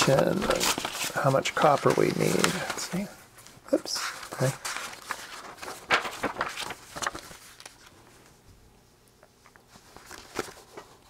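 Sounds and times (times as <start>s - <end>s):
paper sheets rustling: 0.0s - 8.4s, 9.4s - 11.0s.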